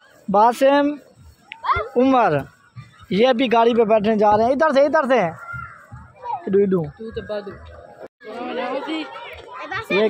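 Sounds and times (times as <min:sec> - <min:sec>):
people and children talking: 0:00.1 - 0:10.0.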